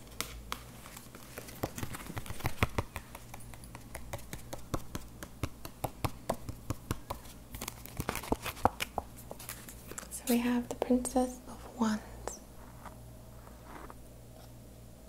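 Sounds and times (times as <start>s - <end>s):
fingers tapping on a card: 1.5s - 7.3s.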